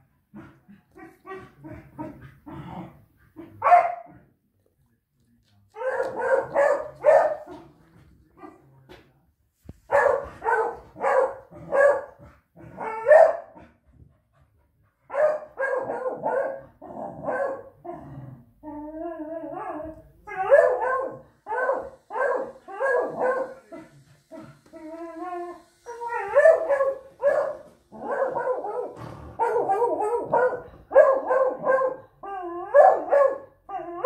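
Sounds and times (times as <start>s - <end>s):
dog barking: 3.6s - 4.2s, 5.8s - 7.6s, 9.9s - 12.2s, 12.8s - 13.7s, 15.1s - 17.8s, 20.3s - 23.6s, 26.2s - 32.1s, 32.7s - 33.6s
dog whining: 24.7s - 26.9s.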